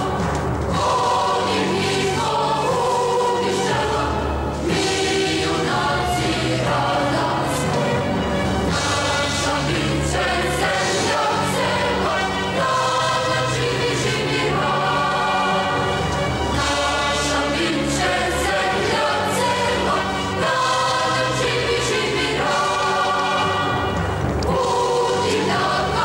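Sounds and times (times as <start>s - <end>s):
choir singing long held notes: 0.0s - 26.0s.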